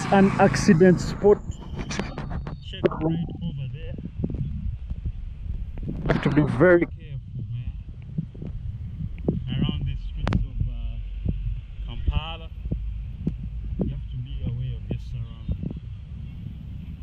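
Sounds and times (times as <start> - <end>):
wind buffeting microphone: 0.0 - 17.0
muffled voice: 0.8 - 4.6, 6.1 - 7.9, 9.3 - 11.0, 11.9 - 12.6, 13.8 - 16.4.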